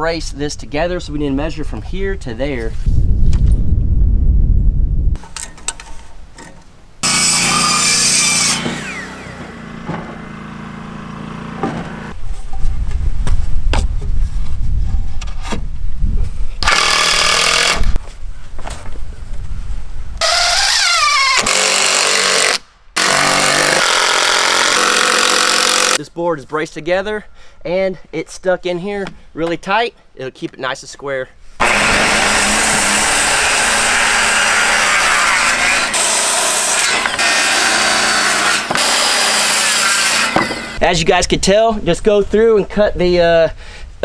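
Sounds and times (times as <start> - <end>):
power tool bursts: 7.0 - 12.0, 16.6 - 17.9, 20.2 - 26.0, 31.6 - 40.8
saw spinning down: 7.0 - 12.2, 20.2 - 26.0, 31.6 - 40.8
knocks on wood: 9.4 - 10.2, 11.6 - 11.9.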